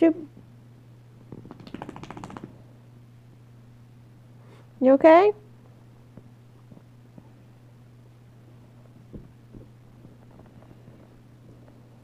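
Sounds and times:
low steady hum: 0.0s - 12.0s
dog claws clicking: 1.3s - 2.5s.

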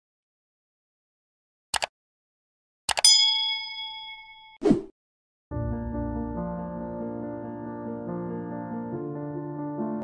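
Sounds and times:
notification bell ding: 3.1s - 4.6s.

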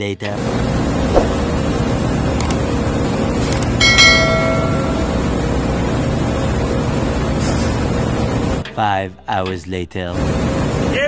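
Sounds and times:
engine-room machinery drone: 0.3s - 8.7s, 10.1s - 11.0s.

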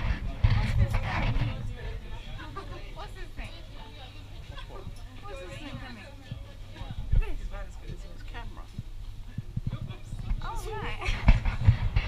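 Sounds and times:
murmur of passengers: 0.0s - 12.0s.

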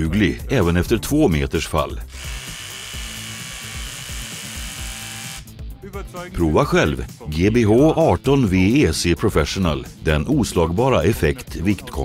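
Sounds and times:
background music: 0.0s - 12.0s
rotary hammer running: 2.1s - 5.5s.

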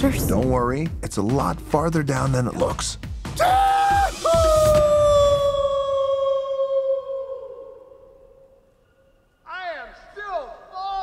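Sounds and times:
man yelling: 9.5s - 11.0s.

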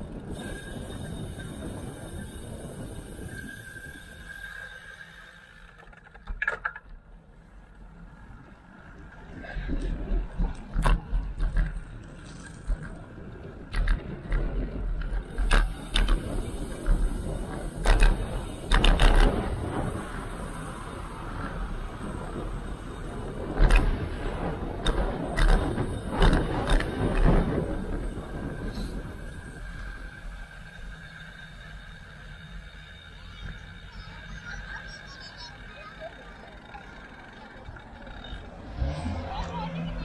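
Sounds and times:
wind buffeting microphone: 0.0s - 4.4s, 9.0s - 31.0s
road rumble: 0.0s - 40.0s
bicycle knocks and rattles: 5.4s - 7.1s, 9.7s - 34.5s.

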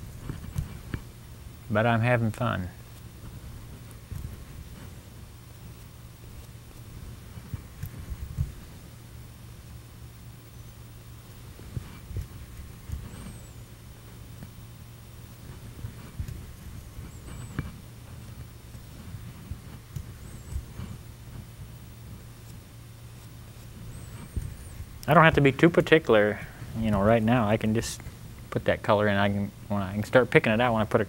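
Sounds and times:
steady low hum: 0.0s - 31.0s
brush dabbing on canvas: 2.8s - 10.0s, 10.6s - 28.2s.

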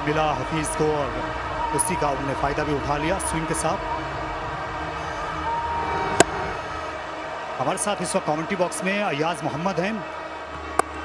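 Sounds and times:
stadium crowd noise: 0.0s - 11.0s
cricket bat striking ball: 6.2s - 6.4s.

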